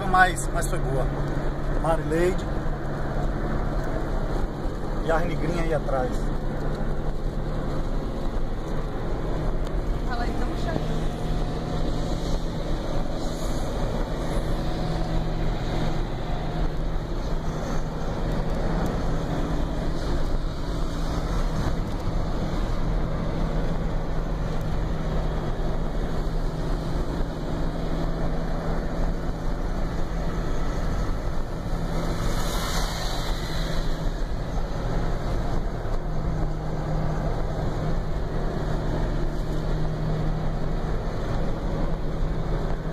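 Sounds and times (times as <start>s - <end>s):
car engine and road noise: 0.0s - 42.9s.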